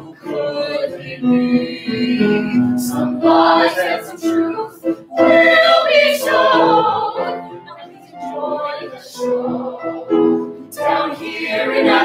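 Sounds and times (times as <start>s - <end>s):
voices singing together: 0.0s - 12.0s.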